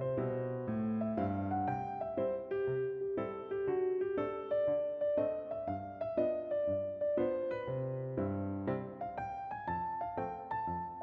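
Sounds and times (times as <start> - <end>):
soft piano music: 0.0 - 11.0.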